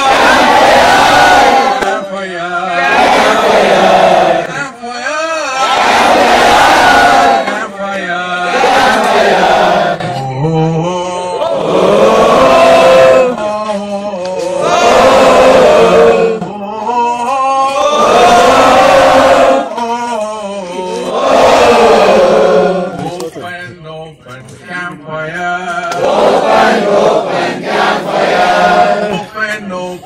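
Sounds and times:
group chanting: 0.0 - 4.5, 5.6 - 13.4, 14.3 - 16.6, 17.7 - 19.8, 20.6 - 23.1, 25.9 - 29.3
man's voice chanting: 1.8 - 3.4, 4.4 - 5.8, 10.0 - 11.8, 28.7 - 30.0.

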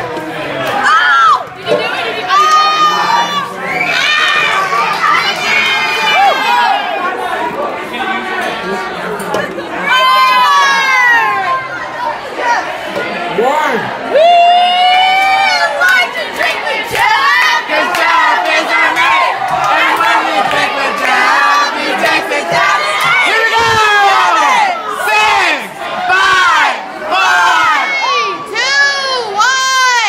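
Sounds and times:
crowd shouting and cheering: 0.0 - 30.0.

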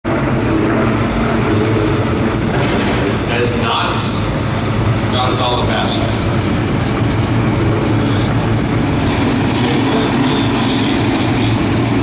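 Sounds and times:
car engine running at low speed: 0.0 - 12.0.

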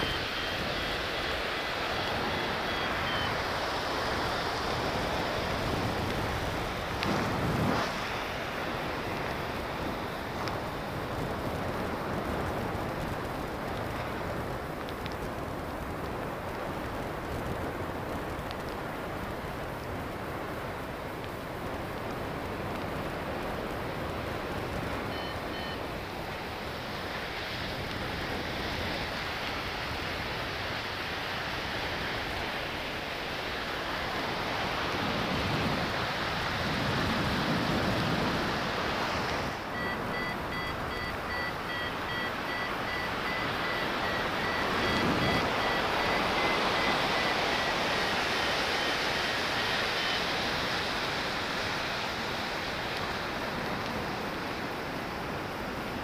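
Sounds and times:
variometer high beeping: 0.0 - 3.8, 25.1 - 25.8, 39.7 - 49.2
wind rushing on microphone: 0.0 - 56.0.

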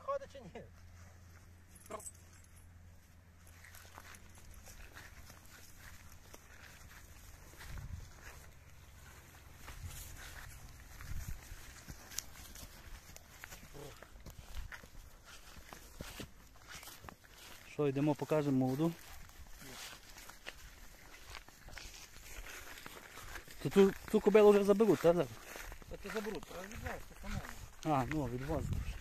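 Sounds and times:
horse footfalls on grass: 3.5 - 29.0
wind on microphone: 28.5 - 29.0.

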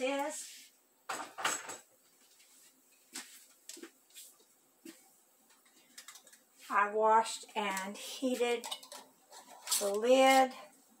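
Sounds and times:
kitchenware clinking: 7.6 - 10.6.

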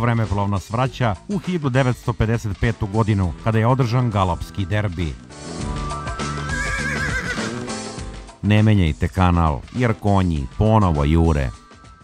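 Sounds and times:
music: 0.0 - 12.0
horse whinnying: 5.9 - 7.9.

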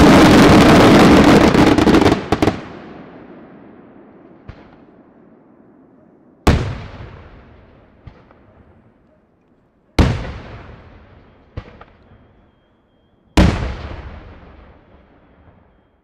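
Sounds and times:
fireworks bangs echoing: 0.0 - 9.0, 10.0 - 12.8, 13.4 - 16.0
faint fireworks bangs: 0.0 - 16.0.

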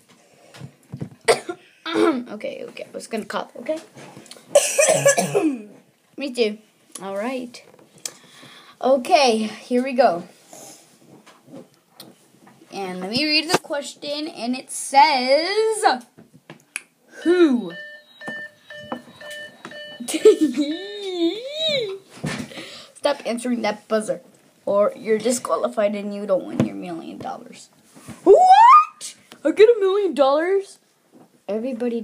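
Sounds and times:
person coughing: 1.3 - 2.2, 4.5 - 5.8
game-show buzzer beeps: 17.7 - 20.9.

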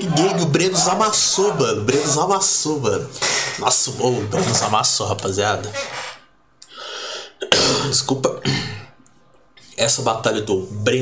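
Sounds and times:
man coughing: 7.5 - 9.0.

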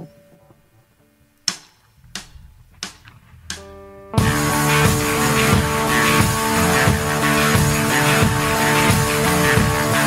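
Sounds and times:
faint ringing notes: 0.0 - 1.4.

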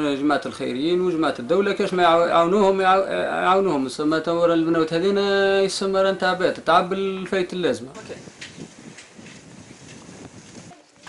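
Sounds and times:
wind on microphone: 7.8 - 11.0.

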